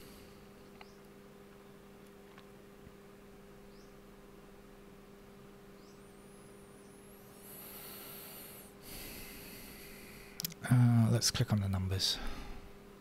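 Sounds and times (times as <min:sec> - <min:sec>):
faint wavering high whine: 0:00.0 - 0:13.0
low electrical hum: 0:00.0 - 0:13.0
high hiss: 0:07.2 - 0:10.9.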